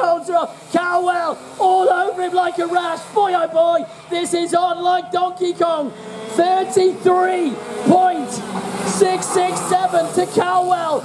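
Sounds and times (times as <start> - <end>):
commentator talking: 0.0 - 11.0
kart engines running: 0.0 - 11.0.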